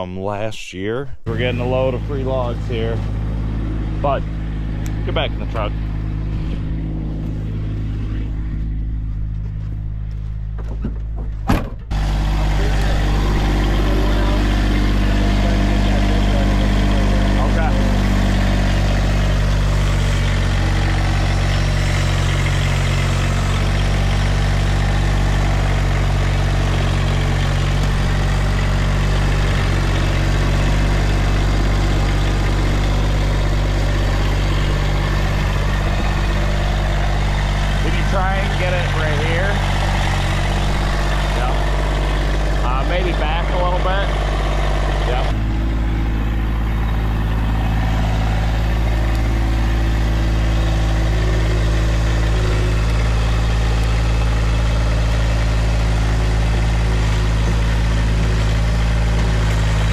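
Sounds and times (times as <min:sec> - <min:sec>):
tractor diesel engine running: 0:00.0 - 0:59.9.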